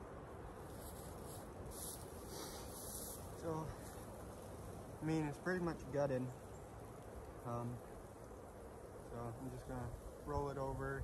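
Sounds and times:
outdoor background noise: 0.0 - 11.0
rustling on dry grass: 0.0 - 11.0.

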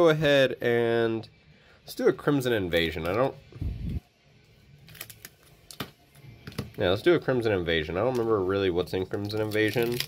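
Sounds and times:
foil wrappers crinkling: 4.8 - 5.9, 9.1 - 10.0.

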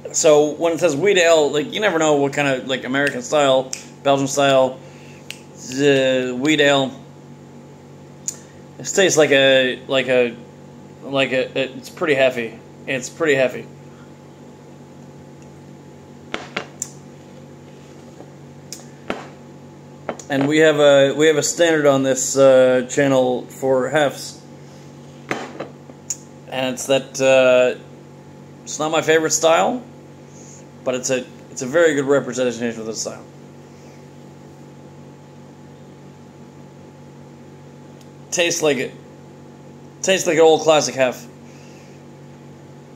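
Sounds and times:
low steady hum: 0.0 - 42.9.

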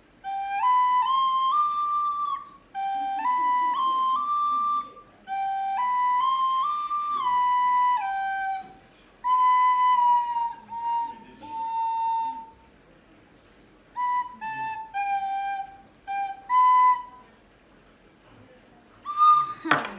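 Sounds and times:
child playing recorder: 0.0 - 12.6, 13.9 - 17.3, 19.0 - 19.8.

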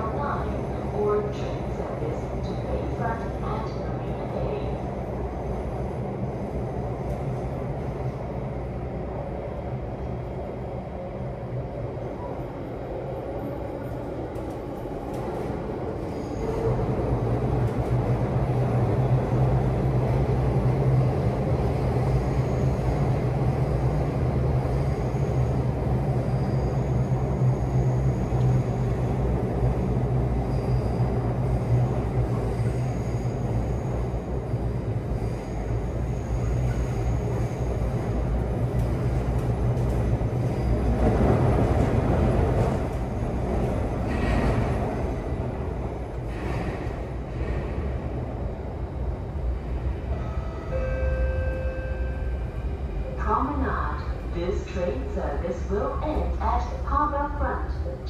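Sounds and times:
train running rumble: 0.0 - 50.8.

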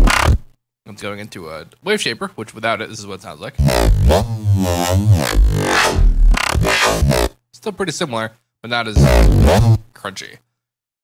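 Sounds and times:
heavy electronic bass: 0.0 - 0.4, 3.6 - 7.3, 9.0 - 9.8.

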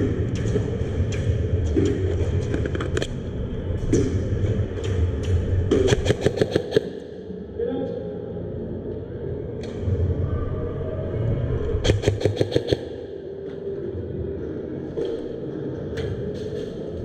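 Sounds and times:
low hall rumble: 0.0 - 17.0
airsoft gun firing burst: 5.8 - 6.9, 11.8 - 12.8.

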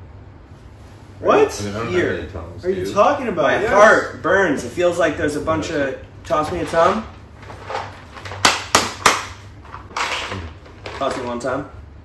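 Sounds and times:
plastic packaging clacks: 7.4 - 11.4.

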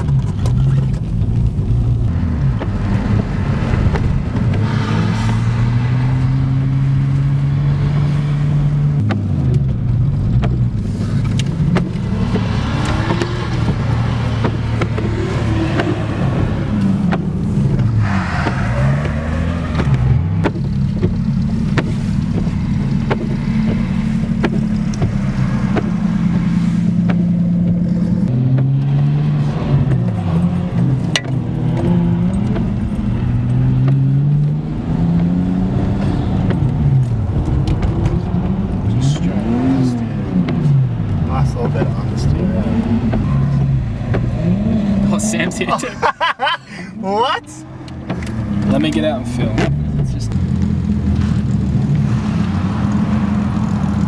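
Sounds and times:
car engines revving: 0.0 - 54.0.

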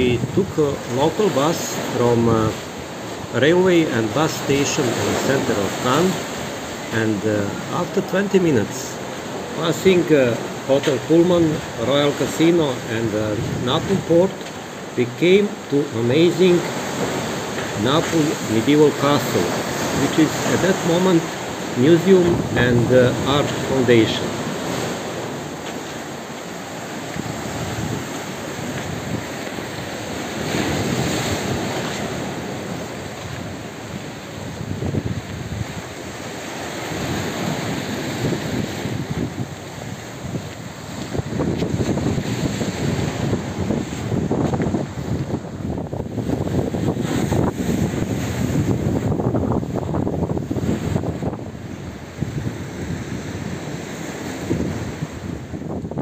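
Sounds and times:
waves breaking on rocky shore: 0.0 - 56.0
wind buffeting microphone: 24.4 - 56.0.

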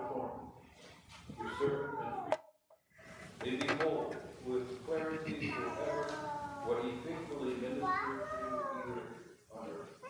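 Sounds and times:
man speaking: 0.0 - 0.5, 3.4 - 10.0.

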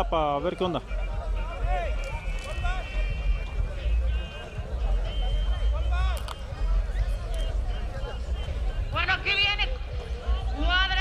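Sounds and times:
people talking in crowd: 0.0 - 11.0.

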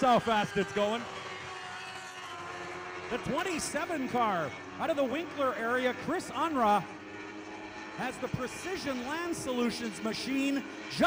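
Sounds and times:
racing engines droning: 0.0 - 11.0.

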